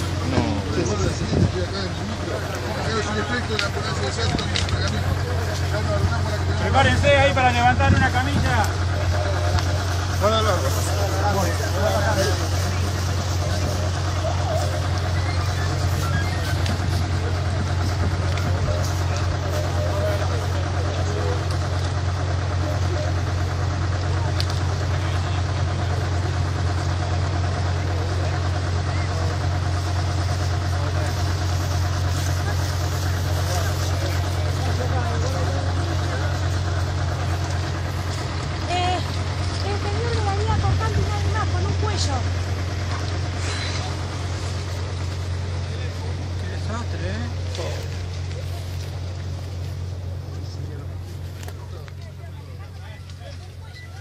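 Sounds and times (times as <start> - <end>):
crowd talking and calling out: 0.0 - 54.0
vehicle engine idling: 0.0 - 54.0.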